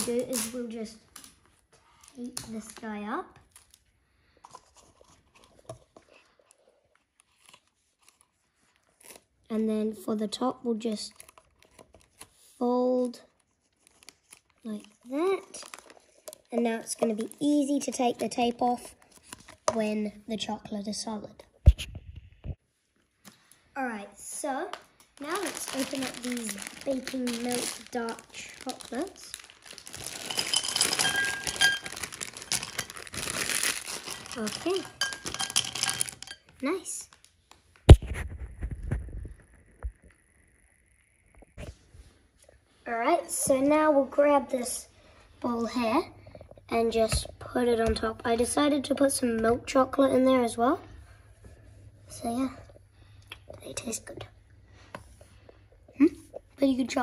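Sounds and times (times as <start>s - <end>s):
sticky tape crinkling and clicking: 0.0s - 1.5s, 24.7s - 36.4s
chocolate buttons clinking on glass: 29.8s - 36.5s.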